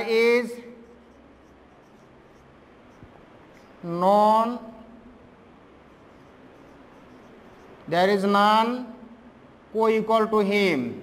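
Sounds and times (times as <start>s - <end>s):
marker writing on whiteboard: 0.7s - 4.1s, 5.7s - 8.0s.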